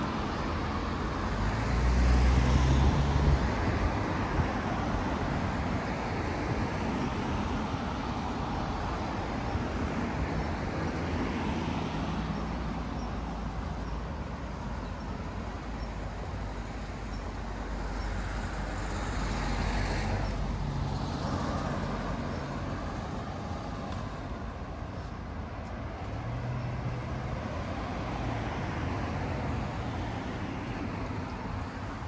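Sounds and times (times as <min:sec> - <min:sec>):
vehicles passing: 0:00.0 - 0:32.0.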